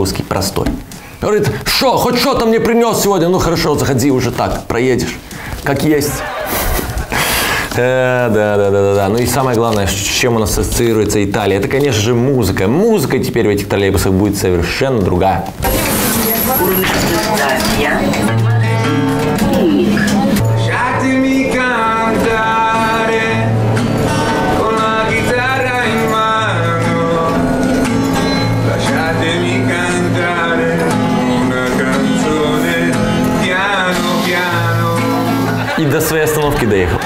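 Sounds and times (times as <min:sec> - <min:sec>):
guitar playing: 0:15.5 - 0:37.0
man singing with vibrato: 0:15.6 - 0:35.9.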